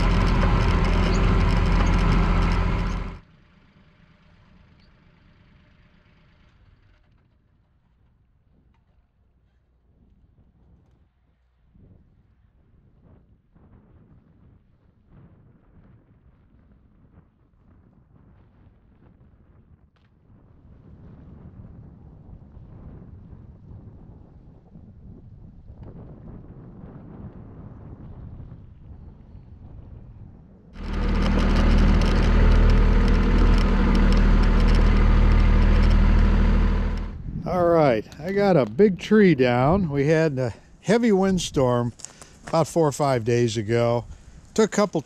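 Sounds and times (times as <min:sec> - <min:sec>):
quiet low rumble: 0:00.0 - 0:03.2, 0:30.8 - 0:42.6
engine running steadily: 0:00.0 - 0:09.2, 0:30.8 - 0:45.0.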